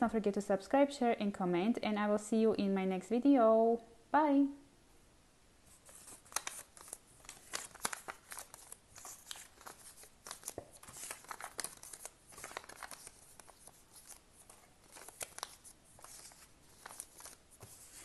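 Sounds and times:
paper crinkling and rustling: 0:05.8 - 0:18.0.

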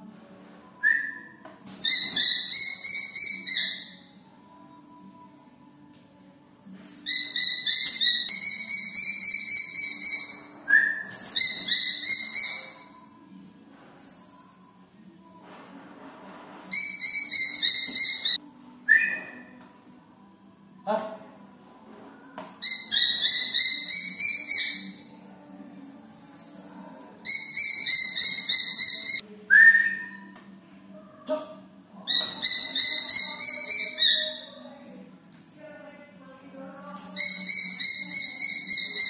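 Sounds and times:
raptor shrill calls: 0:01.8 - 0:04.1, 0:07.0 - 0:10.5, 0:16.7 - 0:18.4, 0:22.6 - 0:25.1, 0:37.0 - 0:39.0.

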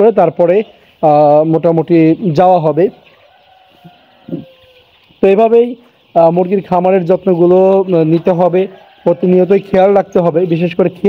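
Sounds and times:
chickens calling: 0:00.0 - 0:11.0.

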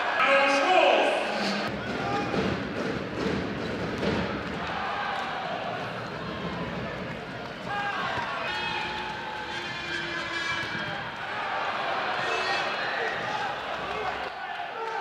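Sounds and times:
arena crowd noise: 0:00.0 - 0:15.0
ball bouncing on court: 0:01.9 - 0:05.3, 0:05.9 - 0:11.3.

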